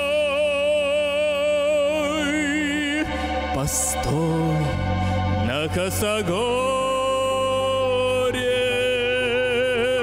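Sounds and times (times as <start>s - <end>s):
backing music: 0.0s - 10.0s
man singing long note: 0.0s - 10.0s.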